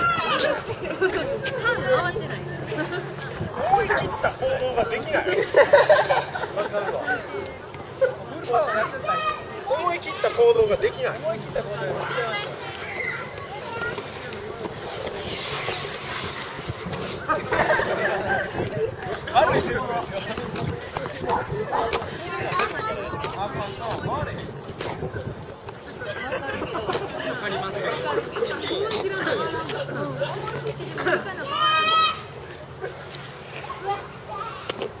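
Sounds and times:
people chatting: 0.0 - 34.9
faint voices: 0.0 - 35.0
wind buffeting microphone: 3.2 - 5.2, 15.1 - 27.3.

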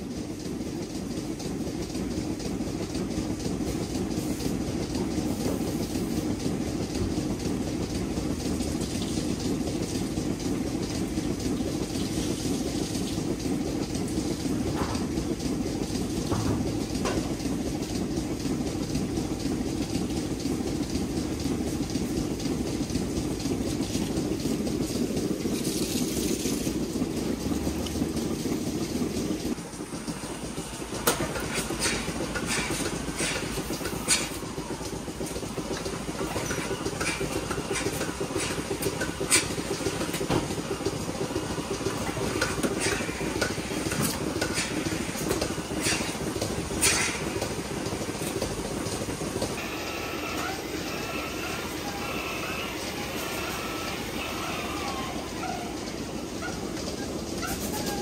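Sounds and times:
milking machinery rumble: 0.0 - 58.0
sharp clicks and metallic knocks: 30.9 - 49.6.

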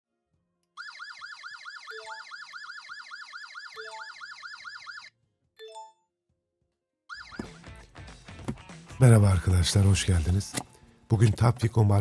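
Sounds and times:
alarm siren wailing: 0.8 - 5.1, 7.1 - 7.6.

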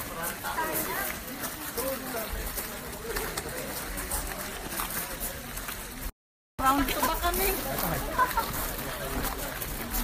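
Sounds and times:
footsteps: 0.0 - 10.0
people talking: 0.0 - 10.0.

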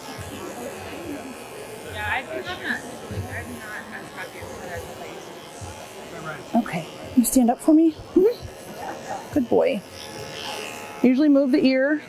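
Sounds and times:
background chatter: 0.0 - 12.0
dog clipper buzzing: 0.0 - 12.0.

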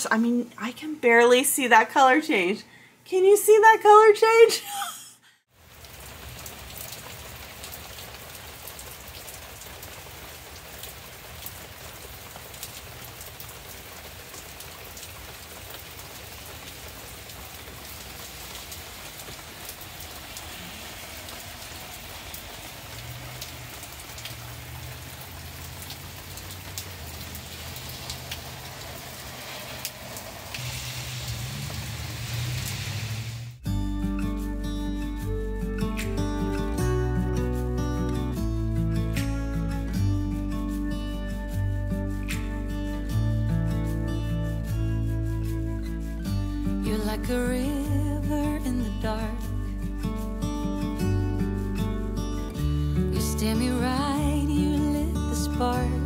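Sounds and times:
steady rain falling: 5.5 - 33.6, 35.2 - 56.0.

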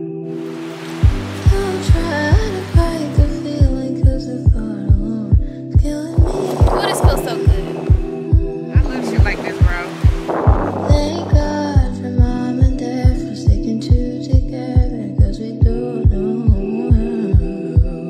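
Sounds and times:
song with kick drum beat: 1.0 - 18.0
sung vocals: 1.0 - 18.0
sustained synth tones: 6.1 - 12.0.

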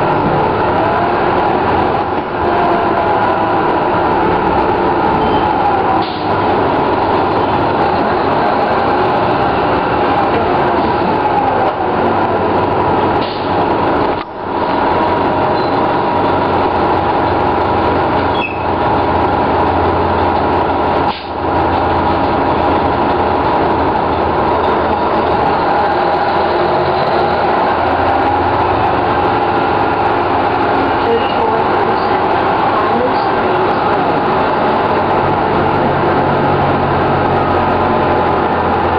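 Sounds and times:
bus diesel engine running: 0.0 - 38.9.

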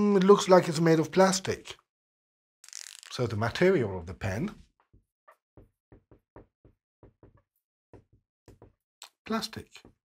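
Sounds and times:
marker tapping on a whiteboard: 4.9 - 10.0.

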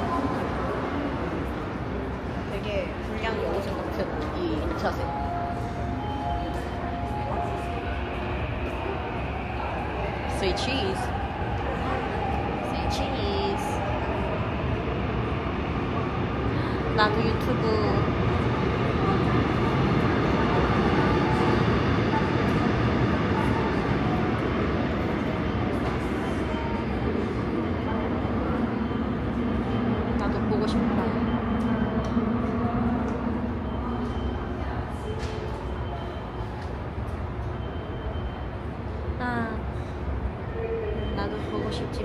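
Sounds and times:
subway train rumbling: 0.0 - 42.0.

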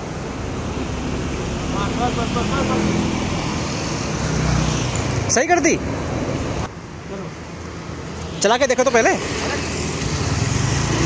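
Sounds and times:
street traffic noise: 0.0 - 11.0.

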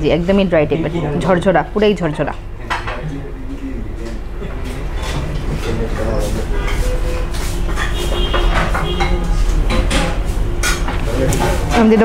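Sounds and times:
woman talking: 0.0 - 2.4, 11.7 - 12.0
restaurant room noise: 0.0 - 12.0.

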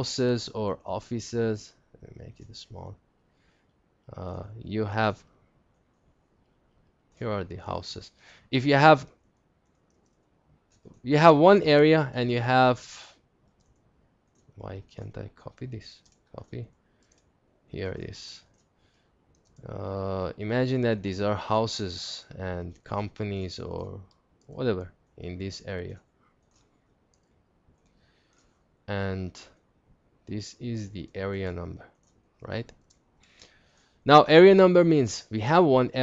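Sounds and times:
voice: 0.0 - 3.0, 4.1 - 5.2, 7.2 - 9.1, 10.9 - 13.1, 14.6 - 16.7, 17.8 - 18.4, 19.6 - 26.0, 28.9 - 29.5, 30.3 - 31.8, 32.4 - 32.7, 34.1 - 36.0
faint computer mouse clicks: 9.1 - 11.0, 13.5 - 14.6, 16.0 - 17.3, 18.4 - 19.7, 26.2 - 28.6, 31.9 - 33.9.

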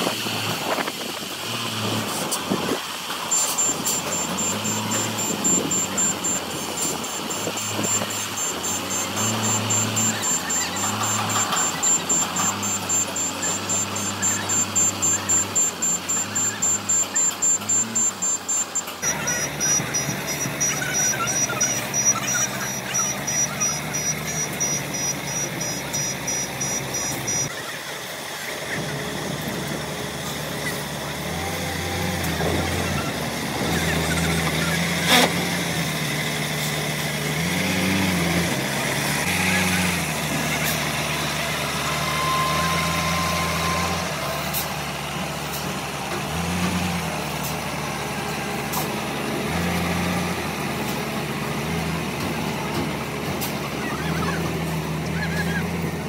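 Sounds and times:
diesel truck engine running: 0.1 - 56.0.

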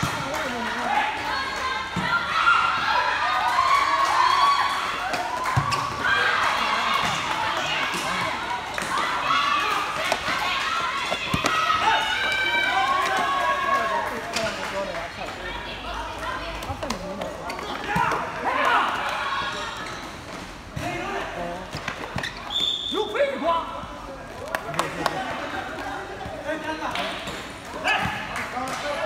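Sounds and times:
players shouting: 0.0 - 14.3.

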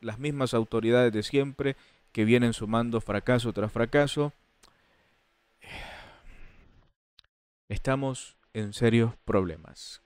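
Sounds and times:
man sighing: 5.6 - 6.7.

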